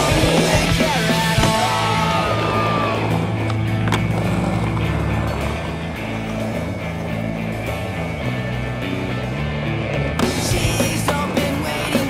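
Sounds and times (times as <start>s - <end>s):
skateboard wheels rolling: 0.0s - 12.0s
skateboard clacks: 0.1s - 6.7s, 10.0s - 12.0s.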